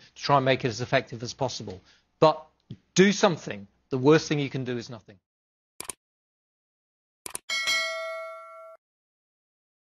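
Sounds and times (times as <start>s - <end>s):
bell ding: 7.5s - 8.8s.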